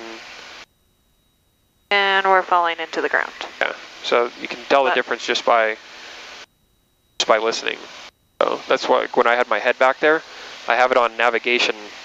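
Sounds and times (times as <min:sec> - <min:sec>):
faint steady high tone: 0:00.0 - 0:12.0
headset intercom cabin hiss: 0:01.9 - 0:06.4, 0:07.2 - 0:12.0
person speaking: 0:02.6 - 0:05.8, 0:07.2 - 0:10.0.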